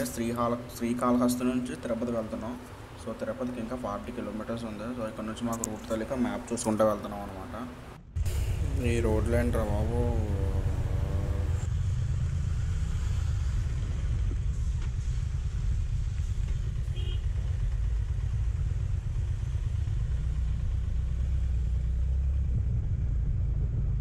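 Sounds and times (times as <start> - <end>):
motorcycle engine rumble: 2.2 - 24.0
wind noise: 12.4 - 19.6.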